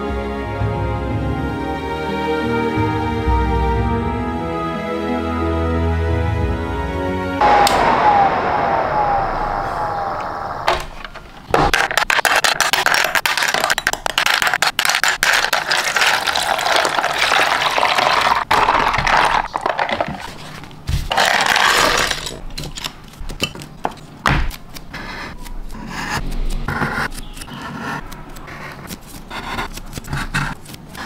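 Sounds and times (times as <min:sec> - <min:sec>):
water sloshing and splashing: 0:15.6 - 0:21.2.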